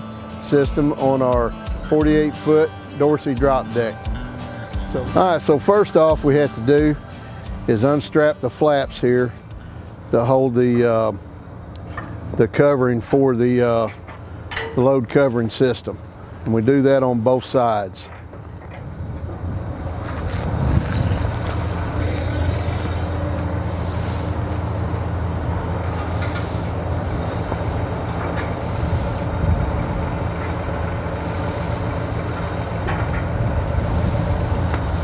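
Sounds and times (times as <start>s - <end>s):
truck engine idling: 0.0s - 35.0s.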